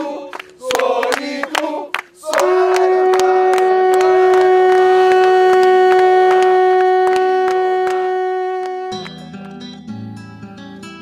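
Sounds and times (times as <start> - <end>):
hands clapping: 0.3 - 10.0
conch shell horn note: 2.8 - 9.1.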